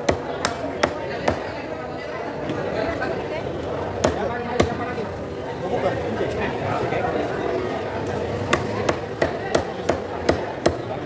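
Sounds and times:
cleaver chopping on wooden block: 0:08.5 - 0:10.8.

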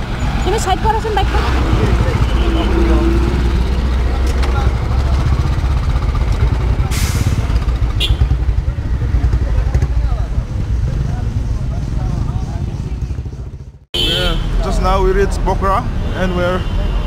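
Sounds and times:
motorcycle engines idling: 0:00.0 - 0:13.8.

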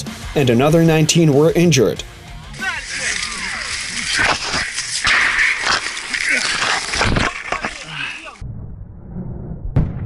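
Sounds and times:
men shouting: 0:02.5 - 0:08.4.

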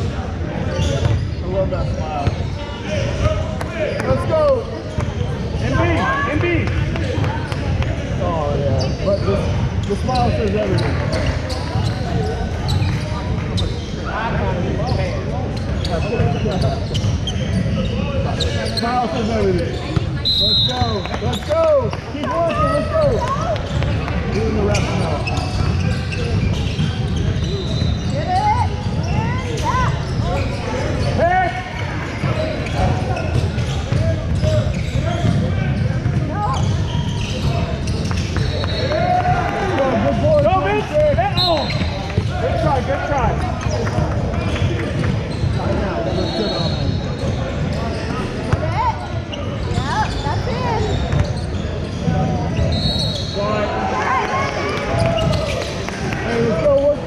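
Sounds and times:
voices of players and spectators: 0:00.0 - 0:57.0.

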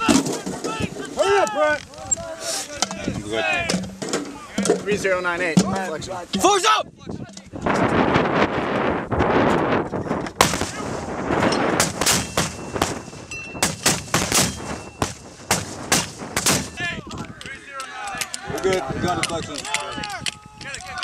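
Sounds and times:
mortar firing report: 0:00.0 - 0:08.2, 0:10.3 - 0:21.0
sharp cracks: 0:10.3 - 0:17.5.

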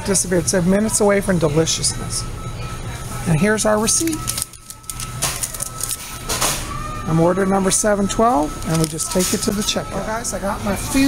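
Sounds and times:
receipt printer printing: 0:01.0 - 0:11.0
paper rustling: 0:04.0 - 0:06.2.

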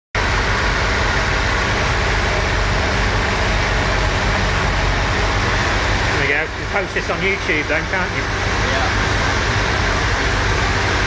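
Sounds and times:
car engine running steadily: 0:00.2 - 0:11.0.

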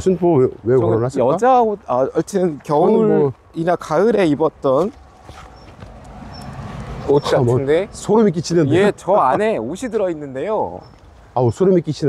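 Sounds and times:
footsteps on paved track: 0:04.7 - 0:07.1.

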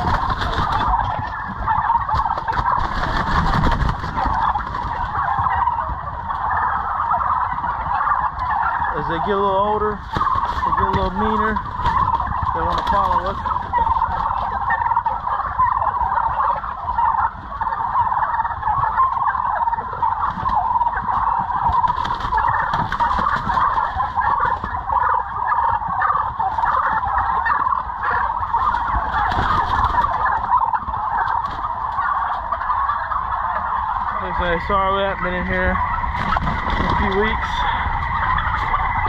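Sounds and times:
turkeys calling: 0:00.0 - 0:39.0.

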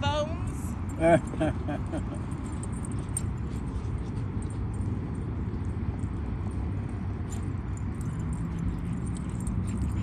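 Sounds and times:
low outdoor rumble: 0:00.0 - 0:10.0
dog collar tags jingling: 0:00.4 - 0:10.0.

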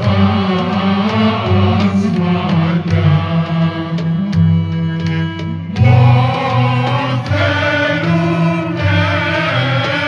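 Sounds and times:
low voices chanting: 0:00.0 - 0:10.0.

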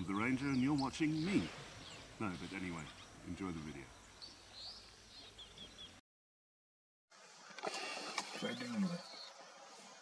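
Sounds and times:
faint outdoor ambience: 0:00.0 - 0:06.0, 0:07.1 - 0:10.0
small bird chirping: 0:00.0 - 0:06.0.

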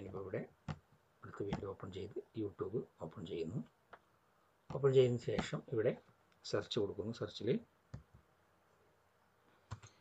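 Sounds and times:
man speaking: 0:00.0 - 0:00.6, 0:01.2 - 0:03.8, 0:04.7 - 0:07.7
computer mouse clicks: 0:09.7 - 0:10.0.

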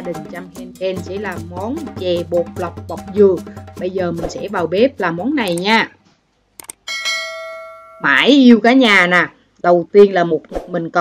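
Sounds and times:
quick clicks: 0:06.6 - 0:06.8
bell ding: 0:06.8 - 0:08.2.

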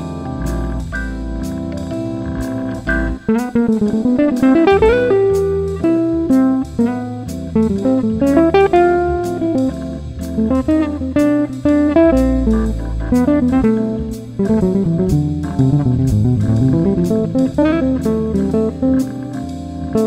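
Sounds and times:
drums keeping time: 0:00.0 - 0:20.0
organ bass line: 0:00.0 - 0:20.0
electric guitar solo: 0:03.1 - 0:20.0.

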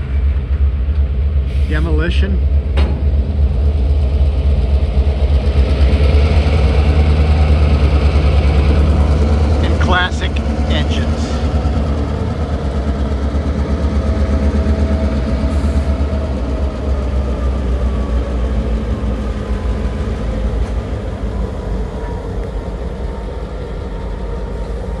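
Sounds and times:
diesel locomotive engines droning: 0:00.0 - 0:25.0.

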